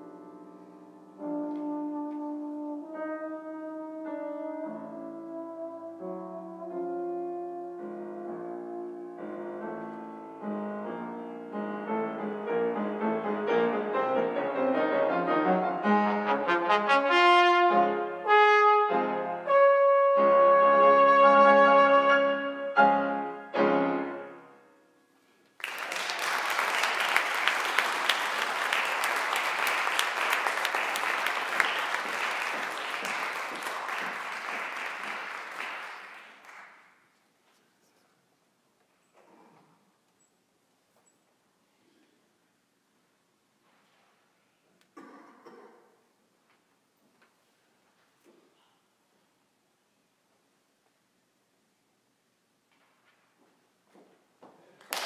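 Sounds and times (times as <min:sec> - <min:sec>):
piano accompaniment: 0:00.0 - 0:24.7
solo brass instrument: 0:01.1 - 0:24.8
audience applause: 0:25.6 - 0:36.9, 0:54.8 - 0:55.0.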